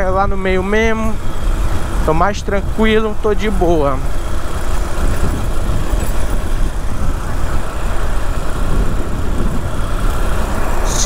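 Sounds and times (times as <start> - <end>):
motorcycle engine running: 0.0 - 11.0
wind noise on microphone: 0.0 - 11.0.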